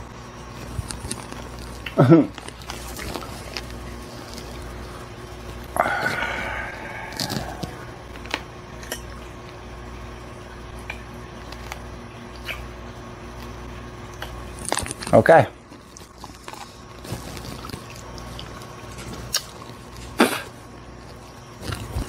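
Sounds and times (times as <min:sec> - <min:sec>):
steady low hum: 0:00.0 - 0:22.0
person chewing with crunches: 0:00.3 - 0:09.7, 0:10.7 - 0:12.7, 0:13.3 - 0:22.0.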